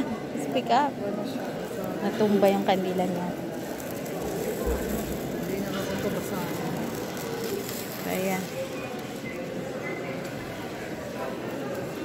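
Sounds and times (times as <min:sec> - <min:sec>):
background chatter of people: 0:00.0 - 0:12.0.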